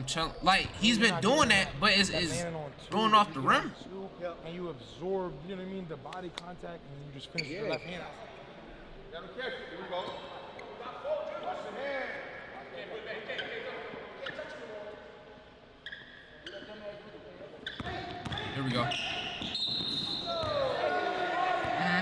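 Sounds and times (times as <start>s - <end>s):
men's voices in gym hall: 0.0s - 19.5s, 20.1s - 22.0s.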